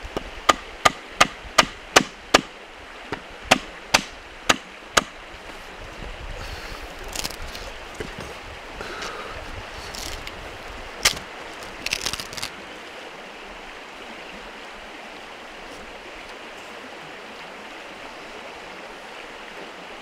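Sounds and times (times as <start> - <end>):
wood splitting with cracking snaps: 7.1 - 7.4, 11.0 - 12.5.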